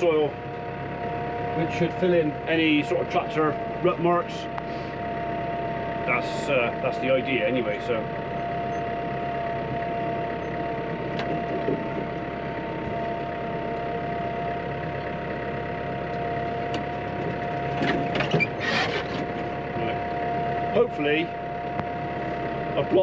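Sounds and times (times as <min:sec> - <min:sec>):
steady whine: 0:00.0 - 0:23.0
tractor engine running: 0:00.0 - 0:23.0.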